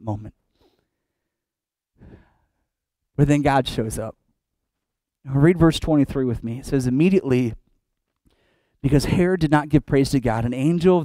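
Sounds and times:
man taking short breath: 0:00.5 - 0:01.2, 0:02.0 - 0:02.7, 0:08.2 - 0:08.8.

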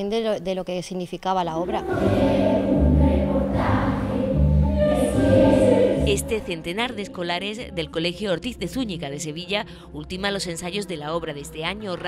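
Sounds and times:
children's choir singing: 0:01.6 - 0:06.6
low bass notes: 0:01.6 - 0:06.8.

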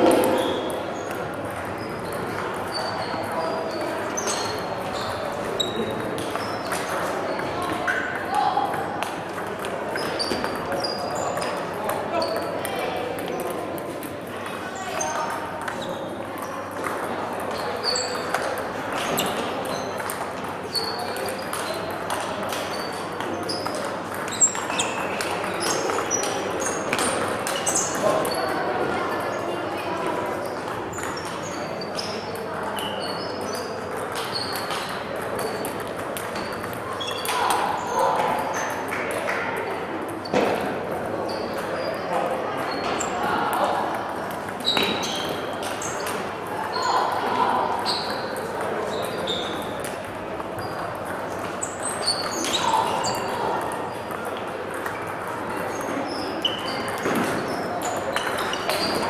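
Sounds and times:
table tennis balls clicking: 0:00.0 - 0:07.8, 0:08.6 - 0:14.6, 0:15.4 - 0:29.3, 0:30.1 - 0:41.8, 0:48.0 - 0:59.0
murmur of voices: 0:00.0 - 0:59.0.

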